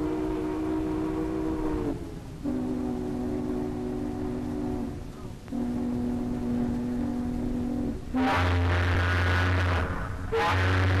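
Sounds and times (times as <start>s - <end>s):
ship's horn blasts: 0.0s - 11.0s.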